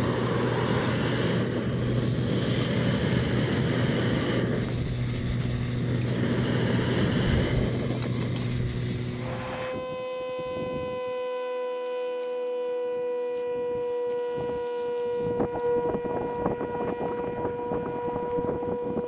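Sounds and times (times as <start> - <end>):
gas burner hiss: 0.0 - 11.2
paper sachet crinkling and tearing: 11.6 - 19.0.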